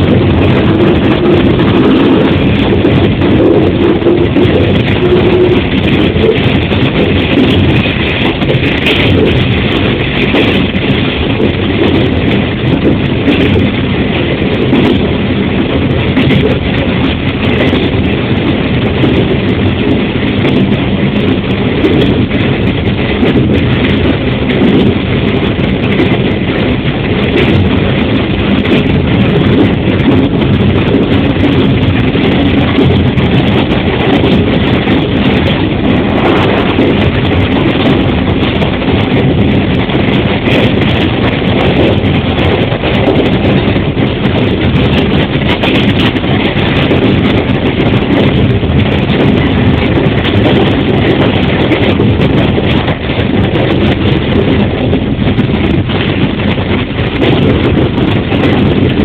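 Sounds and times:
diesel engine droning: 0.0 - 59.0
wheel-on-rail noise: 0.0 - 59.0.

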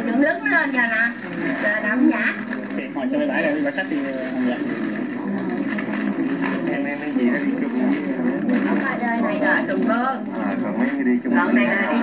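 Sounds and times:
voices talking through tv speaker: 0.0 - 12.0.

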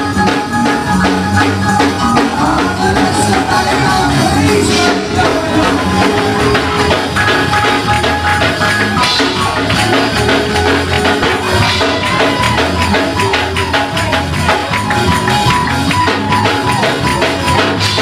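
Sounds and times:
slowed gospel music with tambourine: 0.0 - 18.0.

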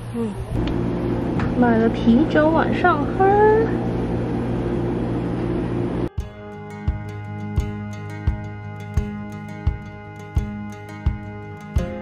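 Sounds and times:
refrigerator compressor hum: 0.0 - 6.2.

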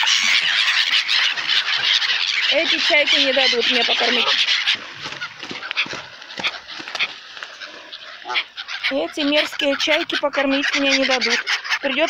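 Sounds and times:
short bird calls: 0.0 - 12.0.

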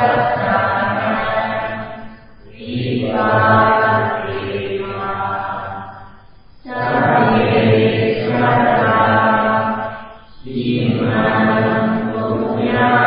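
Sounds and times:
low-pitched chanting: 0.0 - 13.0.

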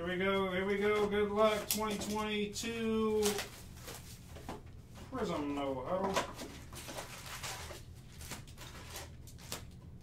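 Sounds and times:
foil pack crinkling: 0.7 - 4.2, 6.3 - 9.8.

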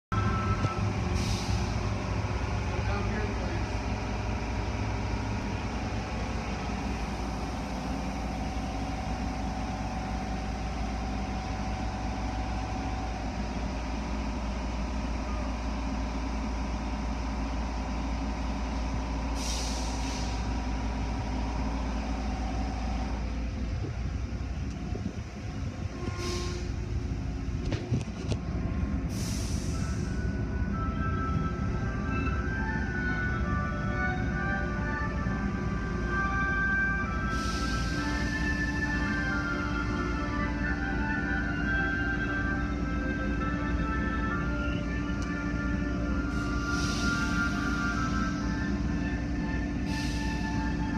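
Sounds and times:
short hisses of air: 19.4 - 20.4, 29.1 - 30.0, 46.3 - 47.4.

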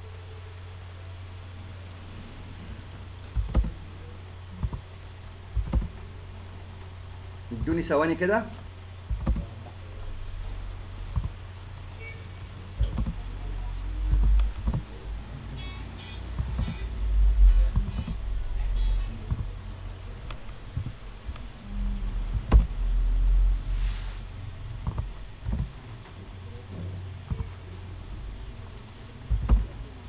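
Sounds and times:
steady low hum: 0.0 - 30.0
low rumble: 1.2 - 7.9, 8.8 - 30.0
keyboard keys tapping: 3.4 - 6.0, 9.1 - 9.6, 11.0 - 12.2, 12.8 - 15.6, 16.3 - 22.8, 24.7 - 26.3, 28.7 - 29.9
keyboard keystrokes: 3.4 - 6.0, 9.1 - 9.5, 12.8 - 13.3, 14.1 - 14.9, 16.3 - 16.8, 22.3 - 22.7, 24.8 - 25.7, 29.3 - 29.8
mouse clicks: 9.1 - 9.5, 14.1 - 14.9, 29.3 - 29.8.

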